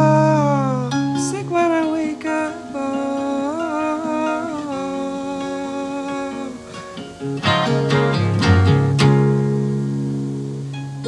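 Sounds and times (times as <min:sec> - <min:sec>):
wordless humming vocal: 0:00.0 - 0:08.8
fingerstyle electric guitar: 0:00.0 - 0:11.0.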